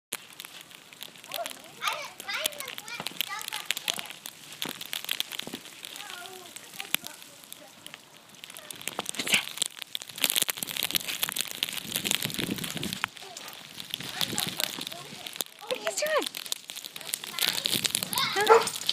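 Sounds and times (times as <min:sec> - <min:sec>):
snow crunching underfoot: 0:00.1 - 0:18.9.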